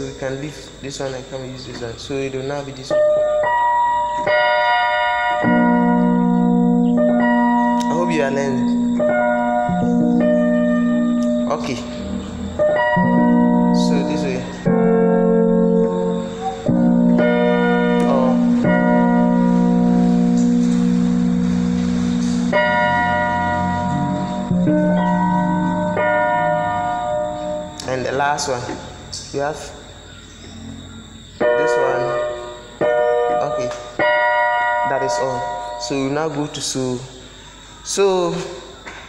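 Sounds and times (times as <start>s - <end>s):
electronic keyboard chords: 0.0s - 38.4s.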